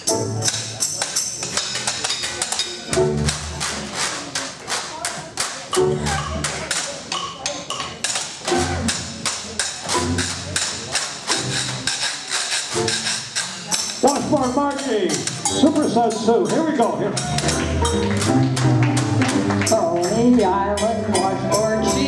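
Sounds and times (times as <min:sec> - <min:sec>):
jazz band playing: 0:00.0 - 0:06.8, 0:08.4 - 0:22.0
bass notes: 0:02.9 - 0:03.9, 0:05.8 - 0:06.7, 0:14.0 - 0:22.0.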